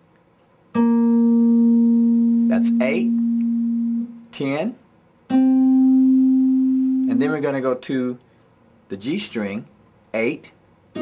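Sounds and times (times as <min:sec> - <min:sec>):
guitar note ringing: 0:00.8 - 0:04.3, 0:05.3 - 0:07.6.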